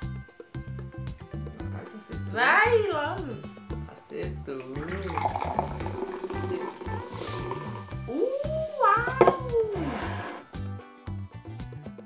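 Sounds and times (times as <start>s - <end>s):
background music: 0.0s - 12.0s
soda pouring into a glass: 4.6s - 8.0s.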